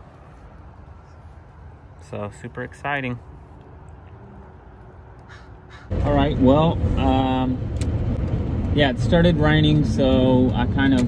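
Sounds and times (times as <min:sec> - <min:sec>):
low outdoor background: 0:00.0 - 0:11.0
bird cawing: 0:05.2 - 0:06.0.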